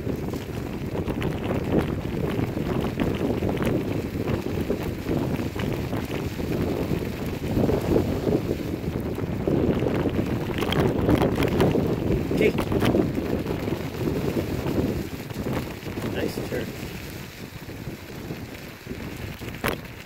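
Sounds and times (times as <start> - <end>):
scooter tyres rolling on dirt: 0.0 - 20.0
small clicks and rattles: 0.0 - 20.0
wind buffeting microphone: 0.0 - 20.0.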